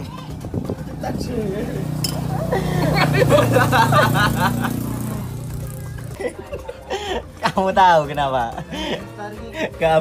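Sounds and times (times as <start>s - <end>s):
low vehicle engine hum: 0.0s - 7.4s.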